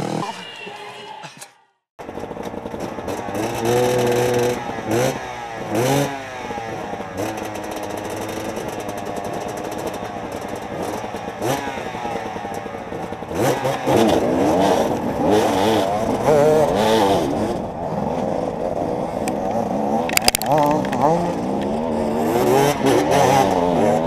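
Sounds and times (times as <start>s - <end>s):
dirt bike engine revving: 2.0s - 24.0s.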